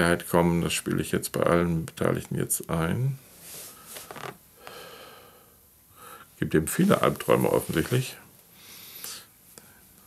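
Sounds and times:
man breathing: 4.6 - 6.3
man speaking: 6.4 - 8.2.

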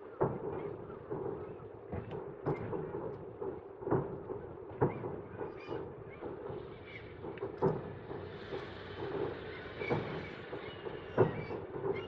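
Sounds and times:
distant fireworks booming: 0.0 - 12.0
steady background noise: 0.0 - 12.0.

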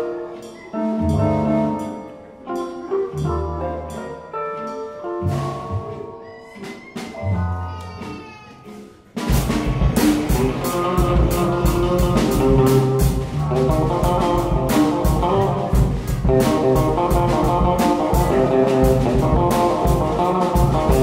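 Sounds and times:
keyboard: 0.0 - 21.0
drum and cymbal hits: 5.2 - 21.0
electric guitar with effects: 10.0 - 21.0.

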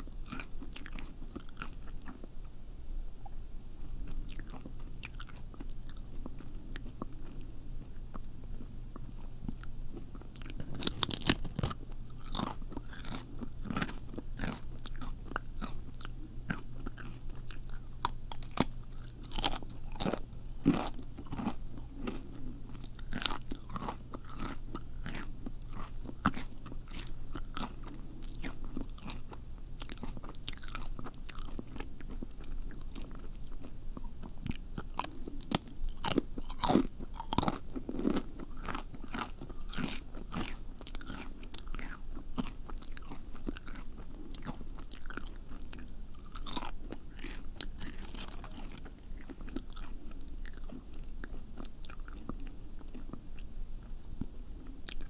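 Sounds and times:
chewing crunchy food: 0.0 - 2.5, 3.8 - 55.0.

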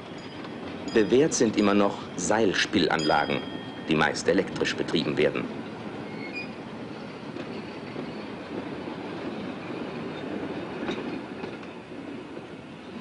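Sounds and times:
faint high squeal: 6.0 - 8.4.

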